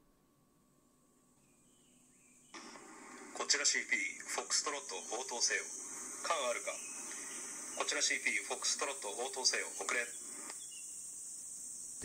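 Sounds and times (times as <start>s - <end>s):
faint high-pitched hiss: 0.2s - 12.0s.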